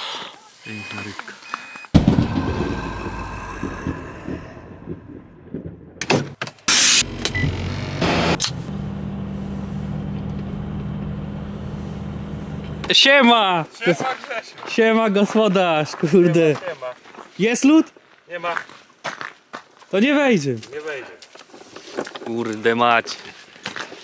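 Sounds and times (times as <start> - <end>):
car engine starting and revving: 6.8 - 12.9.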